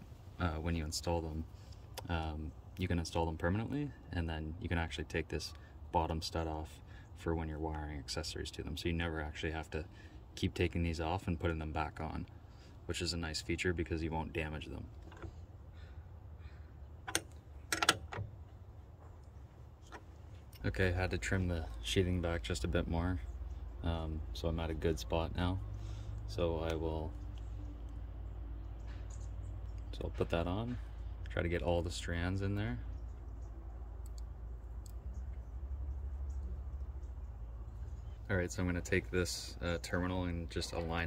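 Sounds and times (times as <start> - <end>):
low steady hum: 0.0 - 41.0
wrench clicking on metal bolt: 17.1 - 18.2.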